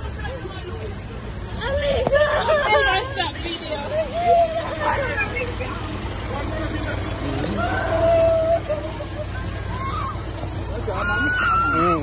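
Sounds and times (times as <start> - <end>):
low background rumble: 0.0 - 12.0
people talking and calling: 0.0 - 12.0.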